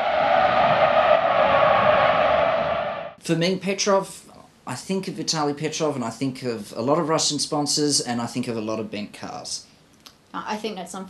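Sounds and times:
steady rushing noise: 0.0s - 3.2s.

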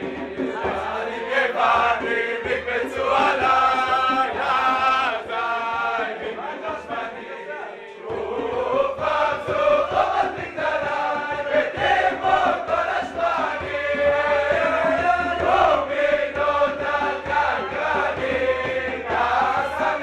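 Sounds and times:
men singing in unison: 0.0s - 20.0s.

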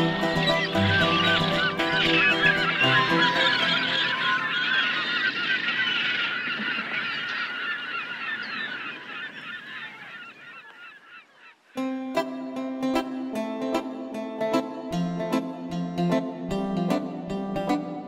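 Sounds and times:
flock of birds squawking: 0.0s - 11.8s.

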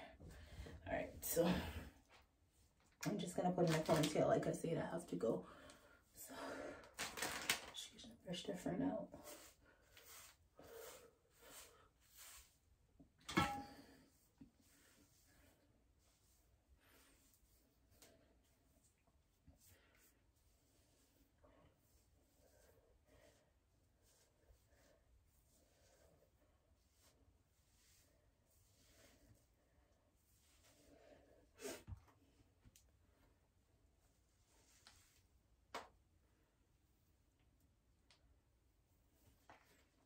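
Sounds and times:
hairbrush swishing through hair: 9.1s - 12.7s
hands rustling hair: 9.2s - 12.7s.

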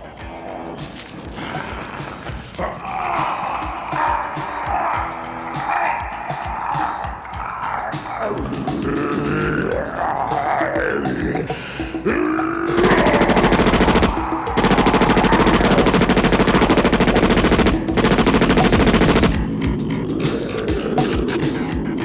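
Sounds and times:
automatic gunfire: 12.7s - 19.6s.

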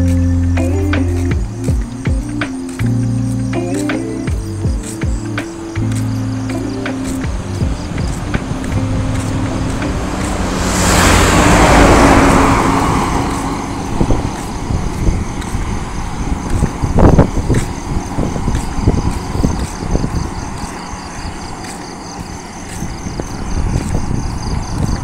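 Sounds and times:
car passing close by: 5.4s - 25.0s
irregular knocks and thumps: 6.9s - 10.4s.

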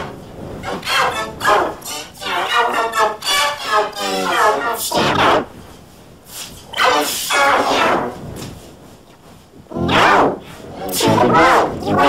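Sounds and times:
distorted loud yell: 0.6s - 5.6s, 6.7s - 8.1s, 9.7s - 12.0s
distorted pitch-shifted shout: 0.7s - 5.5s, 9.7s - 12.0s.

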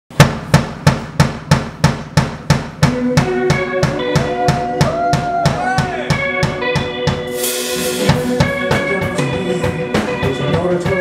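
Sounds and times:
drum kit strikes: 0.1s - 11.0s.

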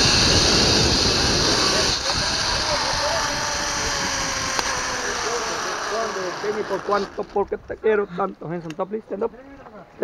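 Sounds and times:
wind on microphone: 0.0s - 5.9s
zipline pulleys hissing on cable: 0.0s - 7.3s.

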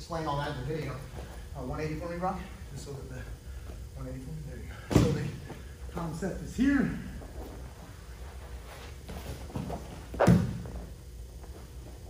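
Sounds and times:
bodies scuffling on mat: 7.3s - 12.0s
body thudding on mat: 9.0s - 10.9s.

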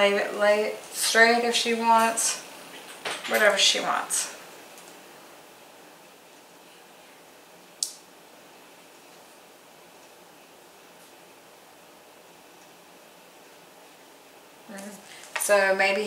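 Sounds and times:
faint steady hiss: 0.0s - 16.0s.

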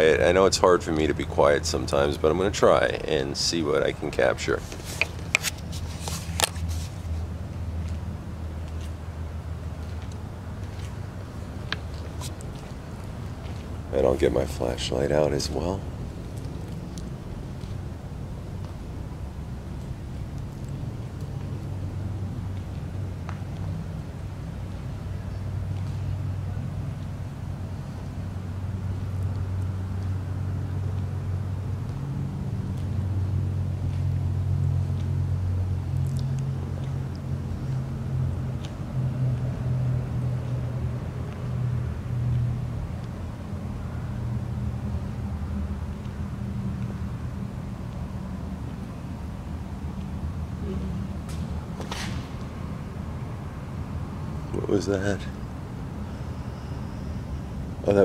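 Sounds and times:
distant road traffic rumble: 0.0s - 58.0s.

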